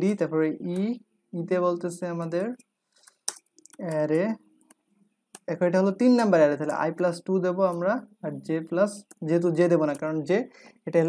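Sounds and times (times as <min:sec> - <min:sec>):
man speaking: 0:00.0 - 0:02.6, 0:03.7 - 0:04.4, 0:05.4 - 0:11.0.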